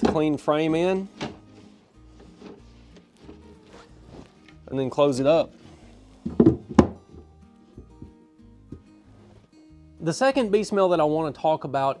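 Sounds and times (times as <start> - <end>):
wooden frames knocking: 0.0 - 0.4, 1.1 - 1.6, 6.2 - 8.2
quiet background music: 0.0 - 12.0.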